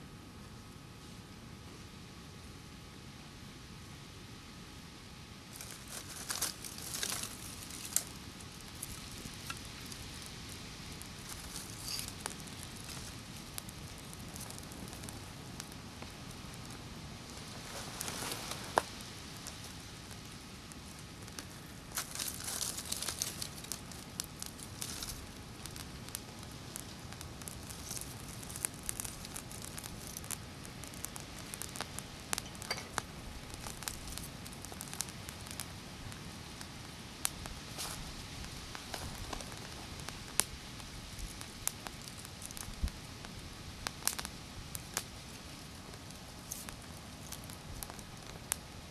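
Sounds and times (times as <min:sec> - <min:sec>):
small fire crackling: 0:00.0 - 0:48.9
dry sticks rustling and snapping: 0:05.6 - 0:20.2, 0:20.8 - 0:36.3, 0:37.2 - 0:48.6.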